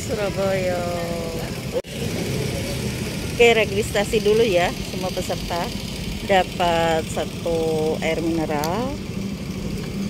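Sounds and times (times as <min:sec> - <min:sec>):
low rumble of street traffic: 0:00.0 - 0:10.0
motorbike engines: 0:00.0 - 0:10.0.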